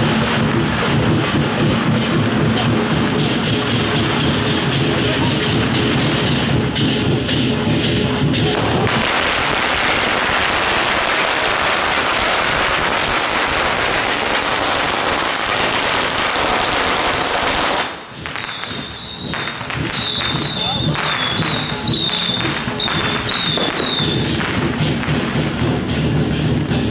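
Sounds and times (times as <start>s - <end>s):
firecrackers crackling: 0.0s - 26.9s
procession drums and music: 0.0s - 26.9s.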